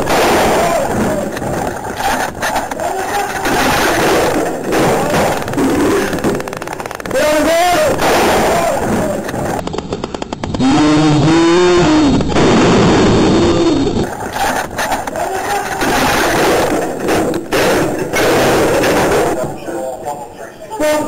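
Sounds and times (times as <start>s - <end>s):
men shouting: 0.0s - 9.6s, 14.1s - 21.0s.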